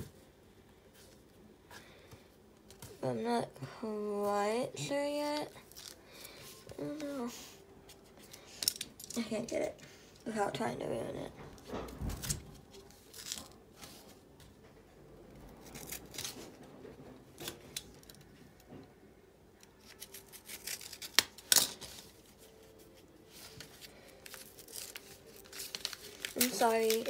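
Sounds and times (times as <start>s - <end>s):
envelope paper handled: 20.0s - 27.0s
knife slitting paper envelope: 23.4s - 27.0s.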